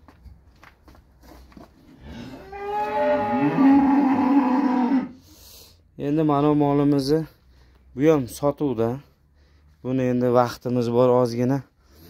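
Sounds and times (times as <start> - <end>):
cow mooing: 2.1 - 5.2.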